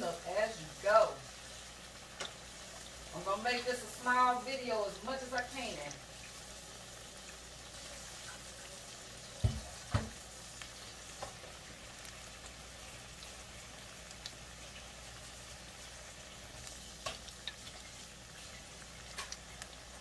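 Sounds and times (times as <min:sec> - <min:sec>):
oil sizzling in a skillet: 0:00.0 - 0:20.0.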